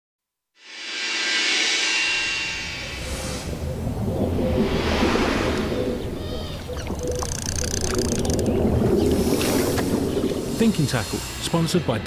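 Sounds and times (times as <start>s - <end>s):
loud rushing noise: 0.6s - 6.2s.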